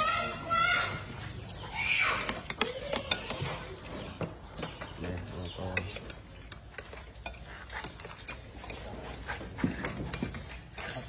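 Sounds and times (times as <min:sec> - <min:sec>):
metal spoons clinking on ceramic: 0:01.2 - 0:11.0.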